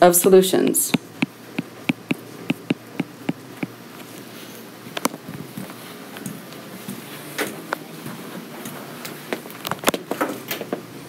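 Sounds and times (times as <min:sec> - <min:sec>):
stylus tapping on glass screen: 0:01.9 - 0:03.4.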